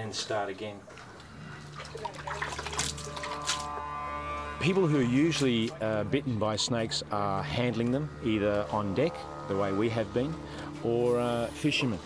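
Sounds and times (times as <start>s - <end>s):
water splashing and dripping: 0.9s - 4.4s
low music drone: 1.2s - 12.0s.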